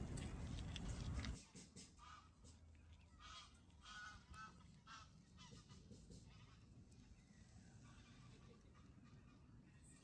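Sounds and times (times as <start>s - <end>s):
geese honking faintly: 3.2s - 9.8s.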